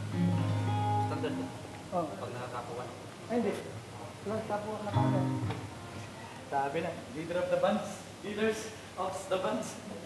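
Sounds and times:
acoustic guitar chord ringing: 0:00.0 - 0:01.6
man talking: 0:01.0 - 0:05.5, 0:06.5 - 0:10.0.

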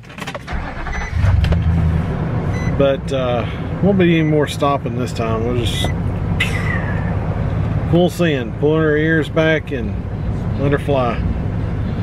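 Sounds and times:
vehicle engine idling: 0:00.5 - 0:12.0.

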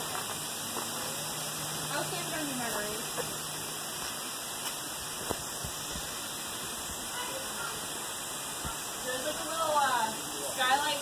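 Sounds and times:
stream water rushing over rocks: 0:00.0 - 0:11.0.

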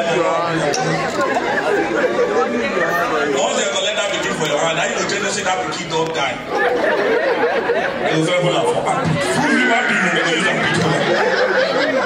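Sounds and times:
room chatter: 0:00.0 - 0:12.0.

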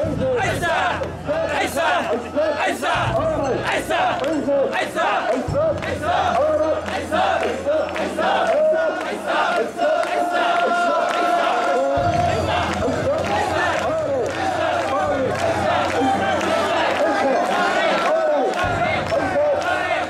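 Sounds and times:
crowd chanting rhythmic calls: 0:00.0 - 0:20.0.

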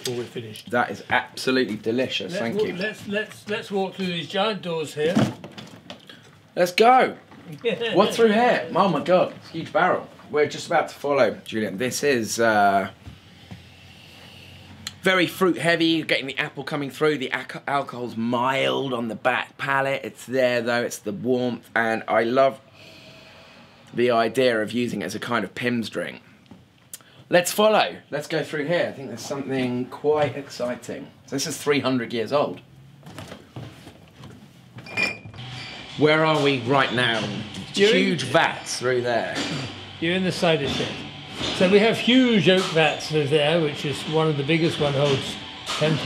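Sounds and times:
person breathing in: 0:22.7 - 0:23.9.

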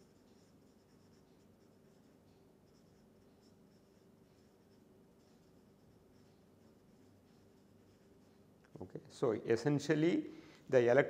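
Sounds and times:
felt-tip marker scratching on paper: 0:00.0 - 0:08.4.

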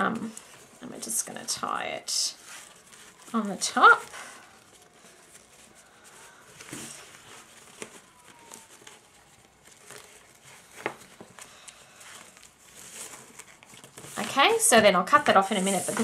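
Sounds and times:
ribbon rustling over paper box: 0:00.0 - 0:16.0.

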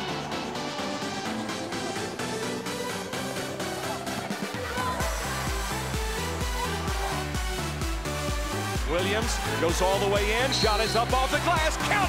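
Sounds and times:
background music with steady beat: 0:00.0 - 0:12.0
deep pulsing bass: 0:00.0 - 0:12.0.

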